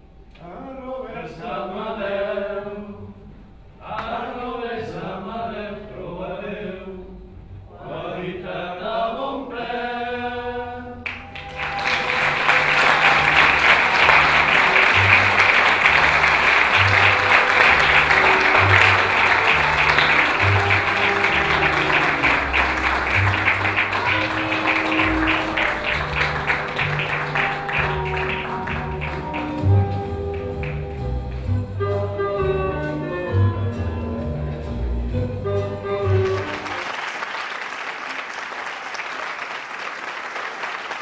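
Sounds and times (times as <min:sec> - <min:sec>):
music: 0:02.4 - 0:36.9
audience applause: 0:11.1 - 0:31.0, 0:36.1 - 0:41.0
voices singing a held chord: 0:11.6 - 0:28.4.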